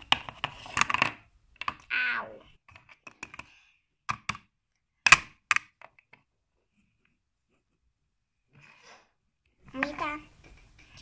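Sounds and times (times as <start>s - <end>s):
plastic toy tapping on wooden table: 4.1s - 4.5s.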